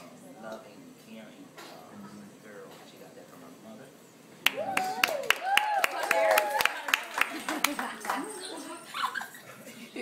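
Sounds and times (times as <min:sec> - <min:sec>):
handclaps: 0:04.4 - 0:08.3.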